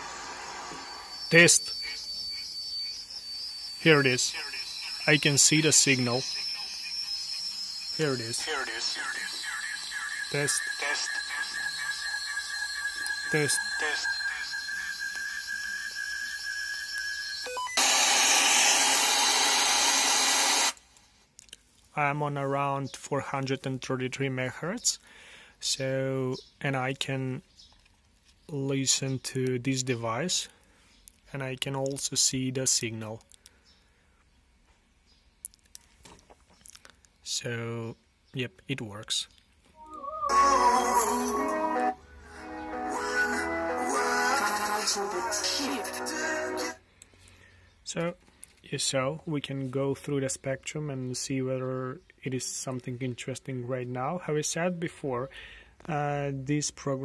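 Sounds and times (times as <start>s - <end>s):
radio static hiss: 0.0s - 2.4s, 3.6s - 20.8s, 43.9s - 46.8s
steady high whistle: 0.0s - 20.8s, 39.8s - 46.8s.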